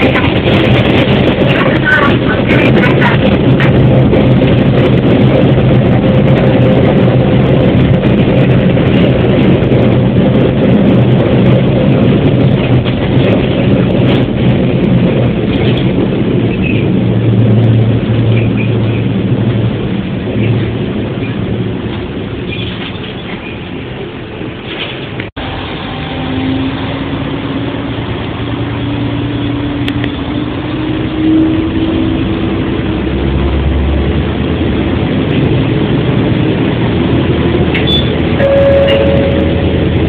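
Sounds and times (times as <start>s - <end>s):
diesel engine hum: 0.0s - 40.0s
wheels rumbling on rails: 0.0s - 40.0s.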